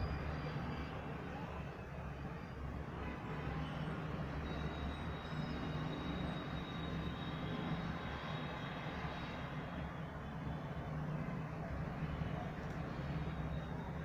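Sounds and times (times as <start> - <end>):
distant engines: 0.0 - 14.0
traffic: 0.0 - 14.0.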